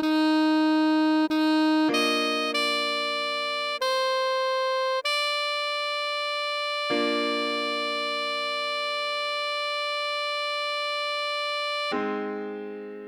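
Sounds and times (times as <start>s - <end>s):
synthesized saxophone long note: 0.0s - 12.2s
keyboard chord: 1.0s - 13.0s.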